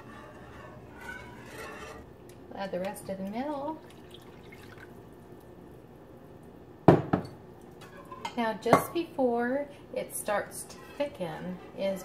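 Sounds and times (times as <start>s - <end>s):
kitchenware clinking: 6.9s - 9.0s.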